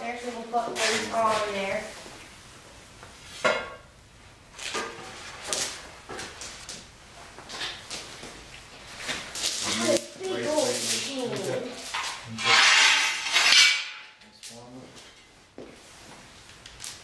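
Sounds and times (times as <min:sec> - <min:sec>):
heavy chain rattling and clinking: 0:05.5 - 0:06.9, 0:09.3 - 0:14.9, 0:16.8 - 0:17.0
person speaking: 0:09.6 - 0:12.5.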